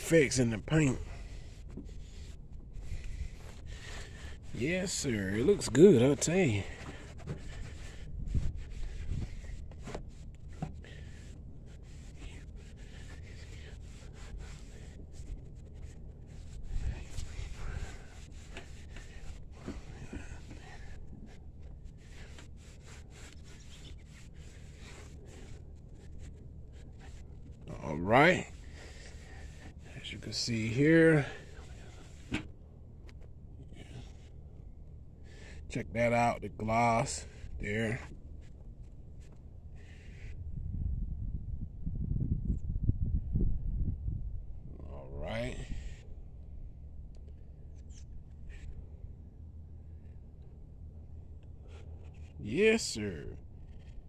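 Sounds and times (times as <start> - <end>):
towel rubbing on car paint: 0.0 - 32.5
steady low rumble: 0.0 - 54.0
wind buffeting microphone: 7.7 - 9.7, 40.2 - 44.7.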